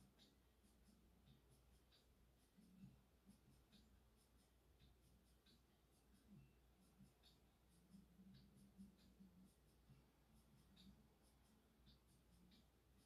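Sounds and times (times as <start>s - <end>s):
faint ticks: 0.0s - 13.0s.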